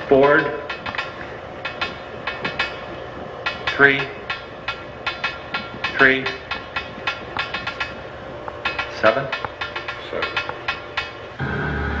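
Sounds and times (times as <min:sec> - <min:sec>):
rapid metallic tapping: 0:00.0 - 0:11.4.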